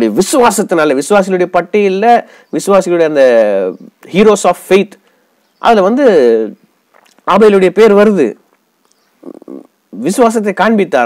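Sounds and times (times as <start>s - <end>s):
man speaking: 0.0s - 5.0s, 5.6s - 6.6s, 7.2s - 8.4s, 9.2s - 11.0s.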